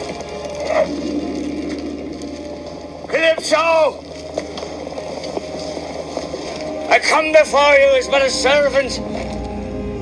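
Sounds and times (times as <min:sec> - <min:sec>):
steady low tone: 0:00.0 - 0:07.0
ropes and timbers creaking: 0:00.0 - 0:07.7.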